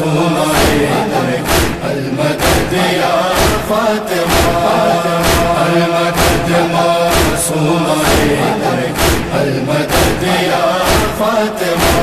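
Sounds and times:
voices chanting a droning refrain: 0.0s - 12.0s
chest-beating thuds: 0.6s - 7.4s, 8.0s - 11.2s.

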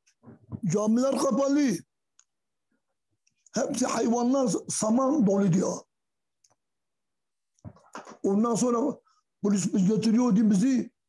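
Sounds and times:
man speaking: 0.5s - 1.9s, 3.5s - 5.9s, 8.2s - 11.0s.

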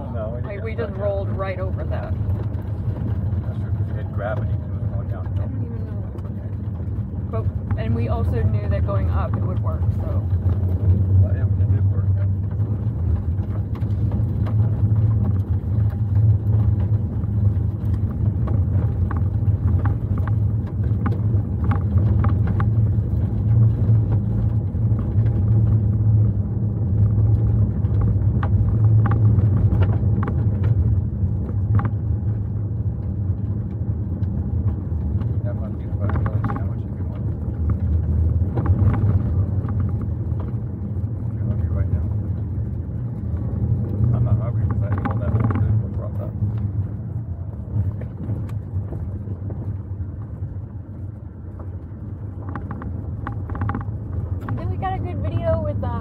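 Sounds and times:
car engine and tyre drone: 0.0s - 56.0s
small clicks and knocks: 12.2s - 54.8s.

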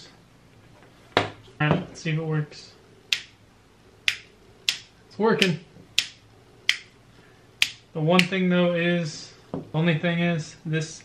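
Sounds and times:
rocker switch clicking: 3.1s - 3.3s, 4.1s - 6.9s.

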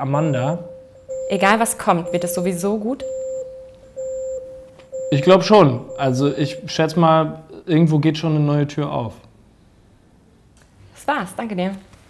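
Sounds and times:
electronic countdown beeps: 0.0s - 7.0s.

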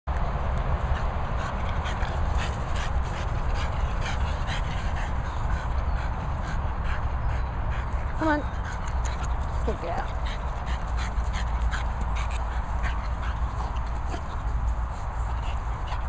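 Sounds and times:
dogs breathing and scuffling: 0.1s - 16.0s
steady low rumble: 0.1s - 16.0s.

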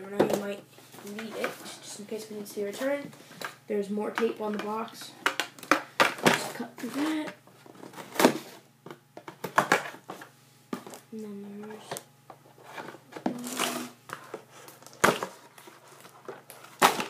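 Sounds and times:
tape and cardboard crackling: 11.8s - 17.0s
person humming: 13.2s - 14.0s.

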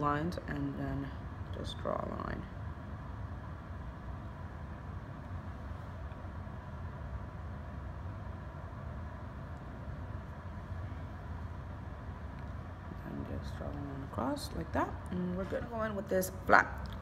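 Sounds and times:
room background rumble and hiss: 0.0s - 17.0s.

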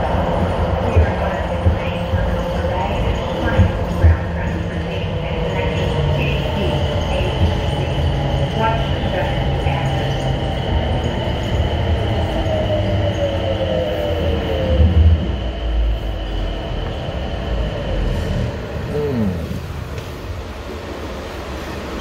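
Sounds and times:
low train rumble: 0.0s - 22.0s.

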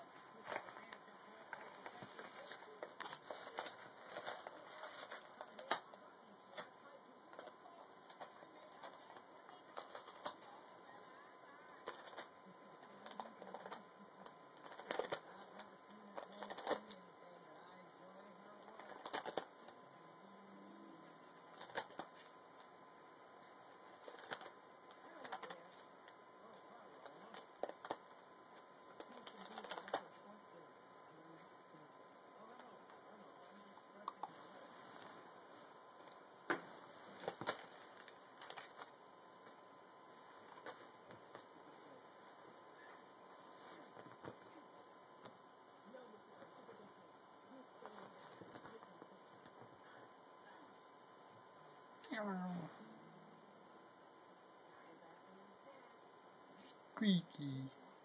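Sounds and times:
cat chewing paper: 0.4s - 10.5s, 11.8s - 17.0s, 18.5s - 19.8s, 23.4s - 30.2s.

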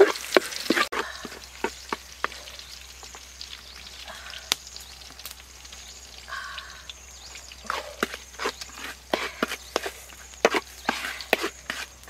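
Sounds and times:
food frying in a wok: 0.0s - 12.0s.

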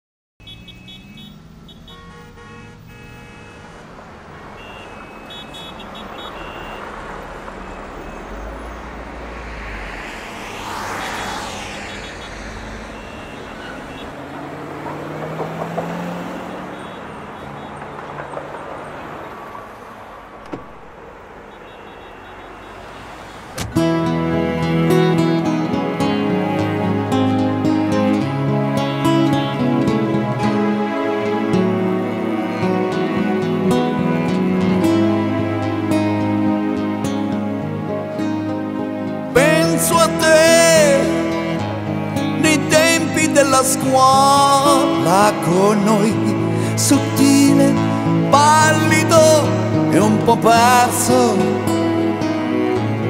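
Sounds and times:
road traffic: 0.4s - 53.0s
car passing by: 0.5s - 53.0s
sharp click: 20.4s - 20.9s.

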